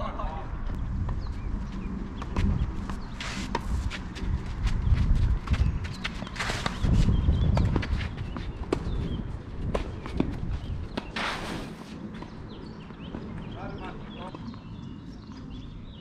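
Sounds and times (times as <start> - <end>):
shoes scraping on clay: 1.6 - 12.4.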